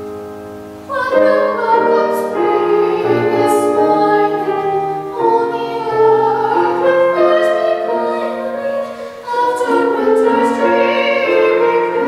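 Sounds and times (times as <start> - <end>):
grand piano accompaniment: 0.0 - 12.0
woman singing operatically: 0.9 - 12.0.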